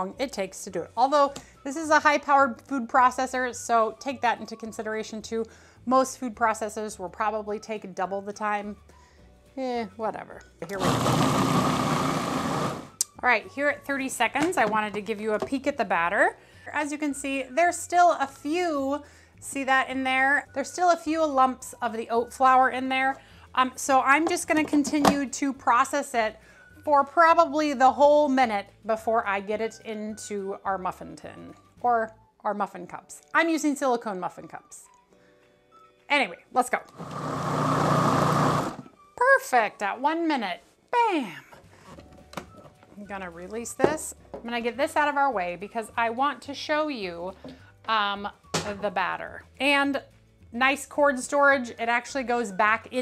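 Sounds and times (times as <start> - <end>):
food processor whirring: 10.7 - 13.0, 36.9 - 38.9.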